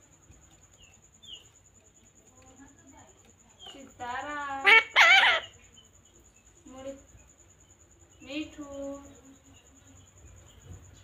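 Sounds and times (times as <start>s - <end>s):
parakeet calling: 4.6s - 5.6s.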